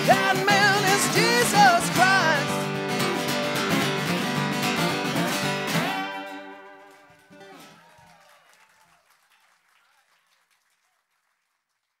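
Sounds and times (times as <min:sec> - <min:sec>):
faint audience applause: 0:00.0 - 0:02.7, 0:05.8 - 0:12.0.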